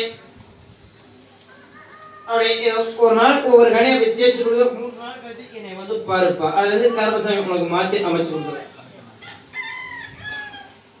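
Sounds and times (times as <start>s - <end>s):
rooster crowing: 1.4s - 3.0s, 9.0s - 11.0s.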